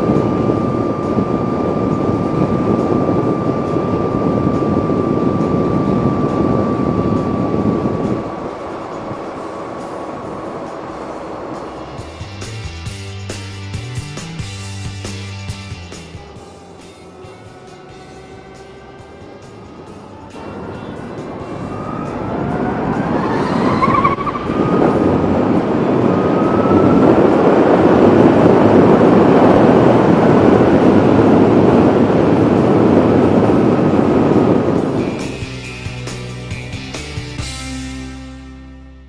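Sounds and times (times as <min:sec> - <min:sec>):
wind rush on camera: 0:00.0 - 0:12.7, 0:16.1 - 0:37.2
electric motor whine: 0:00.0 - 0:13.2, 0:14.4 - 0:36.3
music: 0:00.0 - 0:39.0.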